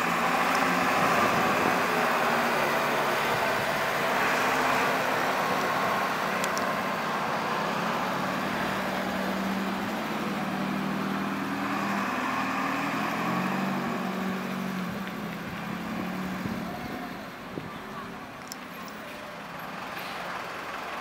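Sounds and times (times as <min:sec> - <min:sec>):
bus engine running: 0:00.0 - 0:21.0
traffic noise: 0:00.0 - 0:21.0.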